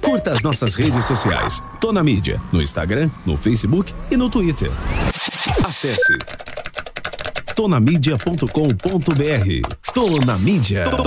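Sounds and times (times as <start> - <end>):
man speaking: 0.0 - 4.9, 7.6 - 11.0.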